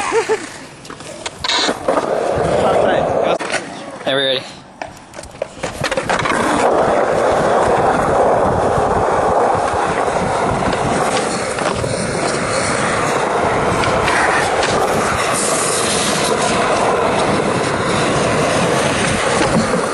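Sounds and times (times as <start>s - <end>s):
skateboard wheels rolling on concrete: 0.0s - 19.9s.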